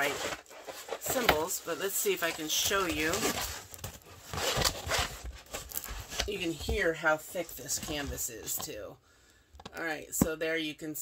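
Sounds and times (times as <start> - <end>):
plastic film crinkling: 0.0 - 8.6.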